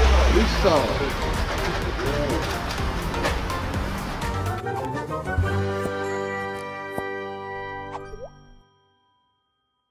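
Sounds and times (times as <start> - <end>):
upward-gliding plop effect: 7.9 - 8.4.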